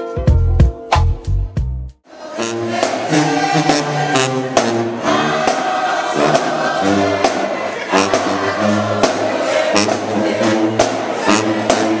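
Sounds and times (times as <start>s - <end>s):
marching band brass chords: 0.0s - 12.0s.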